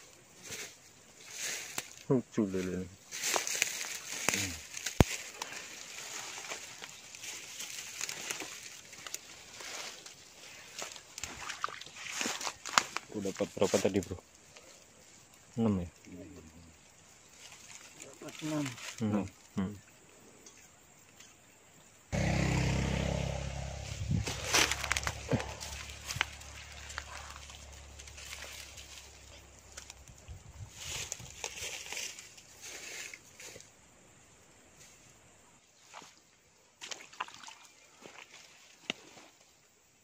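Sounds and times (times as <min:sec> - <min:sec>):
rustling in undergrowth: 0:00.0 - 0:19.6, 0:22.2 - 0:37.0
low hum: 0:22.1 - 0:30.2.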